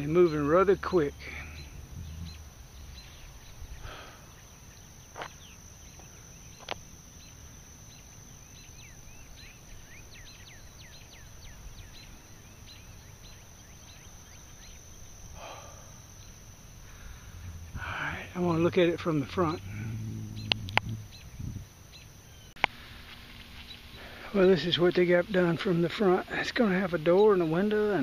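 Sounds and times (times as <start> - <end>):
bird twittering: 0.0 - 22.7
high insect drone: 0.0 - 28.0.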